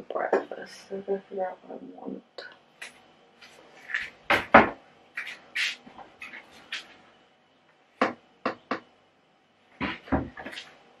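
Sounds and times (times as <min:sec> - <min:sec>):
cupboard doors opening and closing: 0:03.9 - 0:04.8, 0:09.8 - 0:10.6.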